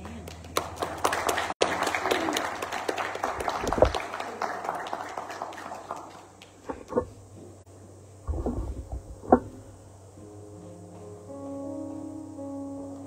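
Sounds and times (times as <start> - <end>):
crowd clapping: 0.0 - 7.0.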